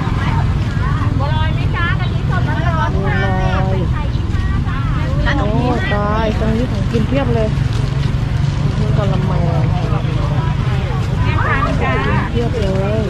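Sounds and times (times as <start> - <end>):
people talking: 0.0 - 7.6, 8.6 - 13.0
steady low rumble: 0.0 - 13.0.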